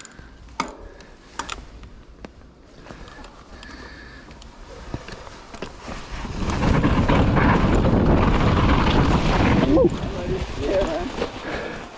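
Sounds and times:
bike tyres rolling over dirt: 0:00.0 - 0:11.9
wind buffeting microphone: 0:05.8 - 0:11.9.

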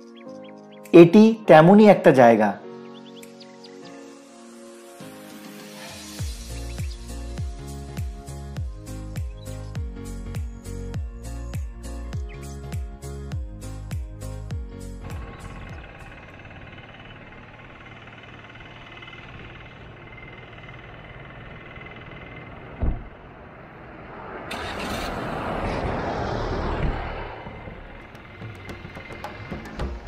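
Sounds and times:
faint background music: 0:00.0 - 0:07.6
car driving past: 0:15.0 - 0:30.0
car door thump: 0:22.8 - 0:23.1.

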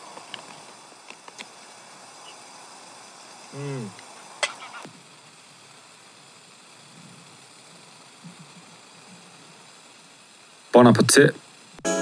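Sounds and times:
gas stove burner hissing: 0:00.0 - 0:12.0.

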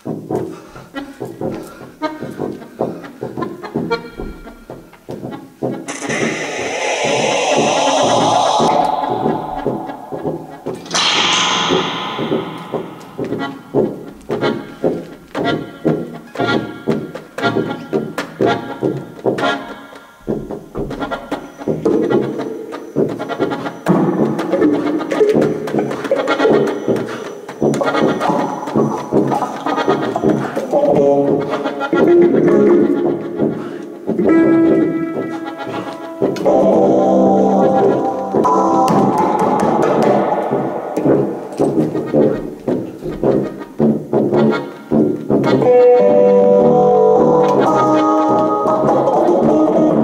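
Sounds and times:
improvised accordion and tuba music: 0:00.1 - 0:06.0, 0:14.1 - 0:20.0, 0:23.1 - 0:38.7, 0:41.6 - 0:50.0
sharp ringing hits: 0:05.9 - 0:14.5.

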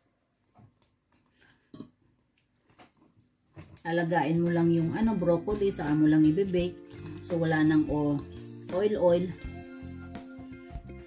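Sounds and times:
person chewing crunchy food: 0:00.8 - 0:03.8.

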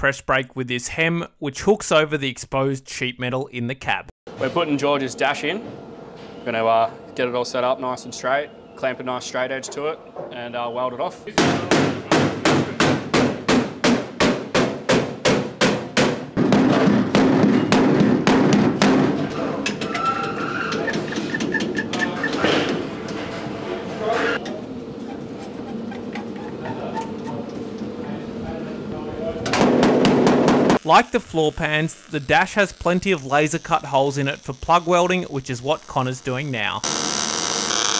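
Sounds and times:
hammer knocking on sheet metal: 0:11.3 - 0:19.3, 0:29.5 - 0:30.8
welder crackling: 0:30.8 - 0:37.9.

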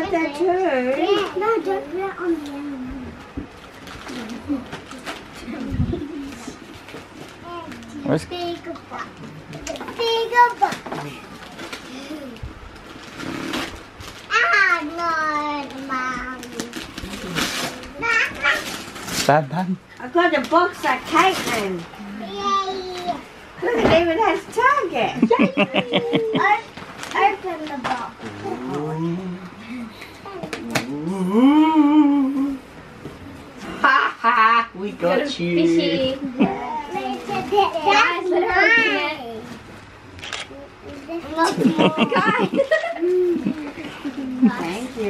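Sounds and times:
woman speaking: 0:00.0 - 0:01.2, 0:20.0 - 0:22.1, 0:23.6 - 0:26.4, 0:44.2 - 0:45.0
noisy rustle: 0:09.6 - 0:25.0, 0:26.3 - 0:28.8, 0:36.9 - 0:45.0
children's voices: 0:22.2 - 0:23.3, 0:25.4 - 0:28.8, 0:36.4 - 0:39.6, 0:40.4 - 0:44.7.

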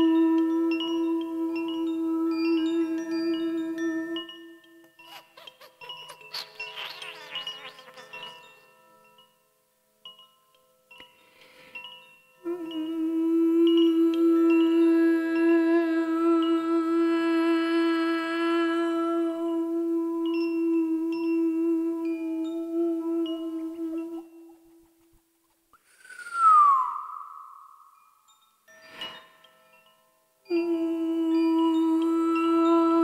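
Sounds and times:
woman chanting sustained note: 0:00.0 - 0:04.6, 0:12.4 - 0:24.6, 0:30.5 - 0:33.0
chime ringing: 0:02.5 - 0:09.4.

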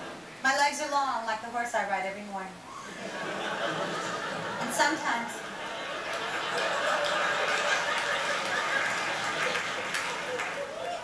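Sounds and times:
studio audience laughing: 0:02.8 - 0:11.0.

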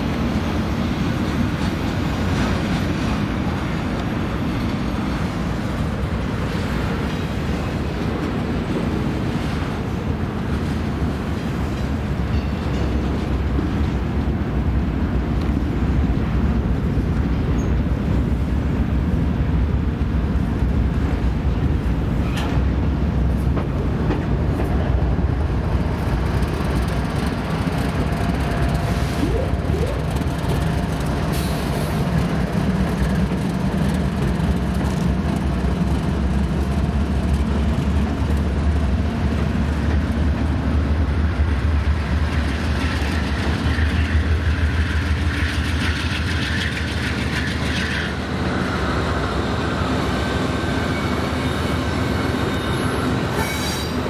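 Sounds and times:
locomotive engine rumble: 0:00.0 - 0:54.0
high wheel squeal: 0:50.4 - 0:54.0.

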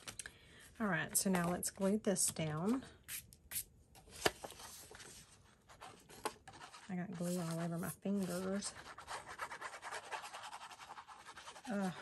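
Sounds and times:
paper rubbing and rustling: 0:04.2 - 0:12.0.

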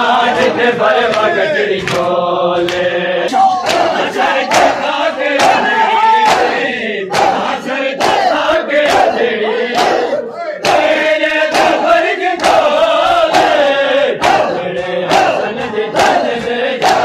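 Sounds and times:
men chanting and shouting: 0:00.0 - 0:17.0
men striking chests in unison: 0:00.0 - 0:17.0.

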